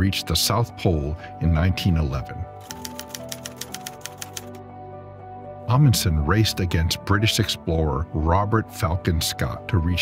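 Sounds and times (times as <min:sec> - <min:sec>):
background music with held notes: 0:00.0 - 0:10.0
typewriter key strikes: 0:02.6 - 0:04.6.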